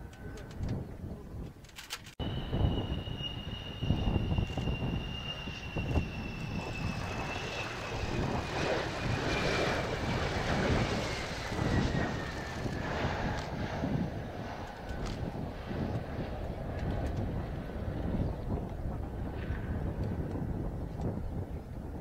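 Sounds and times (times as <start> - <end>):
jet noise: 1.8 - 22.0
jet engine whine: 2.1 - 22.0.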